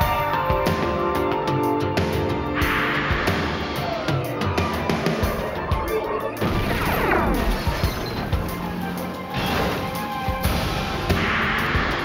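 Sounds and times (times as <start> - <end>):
dramatic soundtrack music: 0.0 - 12.0.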